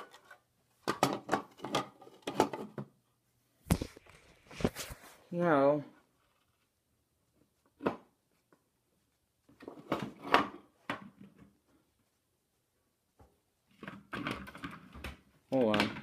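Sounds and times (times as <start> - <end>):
knocks and handling clatter: 0.0 - 3.0.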